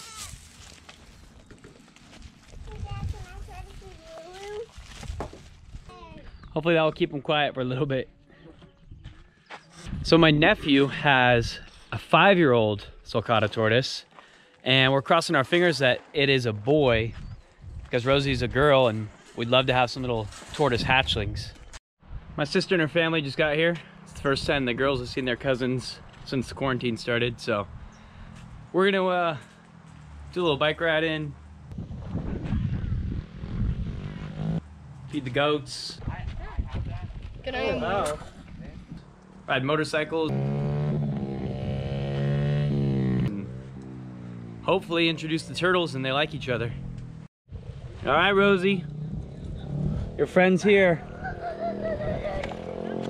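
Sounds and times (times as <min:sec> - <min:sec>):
goat bleating: 0:00.0 - 0:00.3
wind buffeting microphone: 0:02.5 - 0:06.5, 0:16.8 - 0:18.7, 0:27.6 - 0:28.7, 0:31.7 - 0:34.6, 0:36.0 - 0:39.2, 0:51.1 - 0:52.7.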